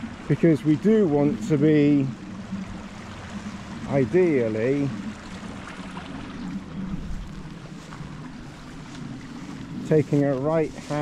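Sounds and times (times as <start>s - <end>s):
small stream running: 0.0s - 11.0s
wind buffeting microphone: 0.0s - 11.0s.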